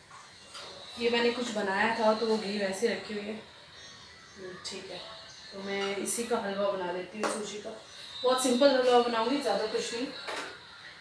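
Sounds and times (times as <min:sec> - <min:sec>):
woman speaking: 0:01.0 - 0:03.5, 0:04.4 - 0:10.3.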